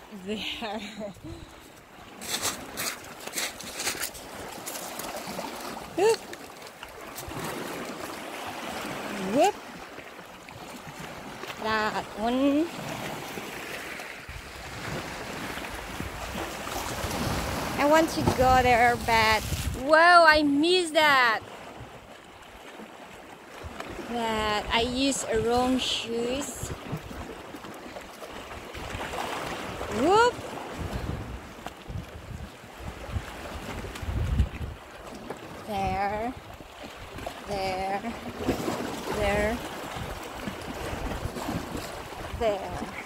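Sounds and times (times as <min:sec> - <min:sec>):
small waves washing over rocks: 0:01.5 - 0:20.1, 0:25.0 - 0:43.0
wind rumble on microphone: 0:14.3 - 0:20.0, 0:28.6 - 0:43.0.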